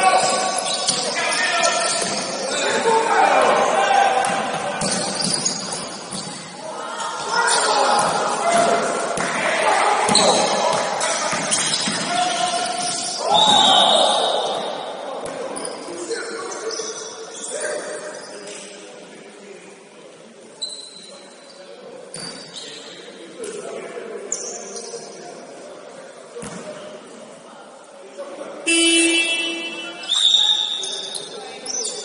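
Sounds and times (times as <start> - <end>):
players' voices: 0.0 - 32.0
scoreboard horn buzzy blast: 28.7 - 29.9.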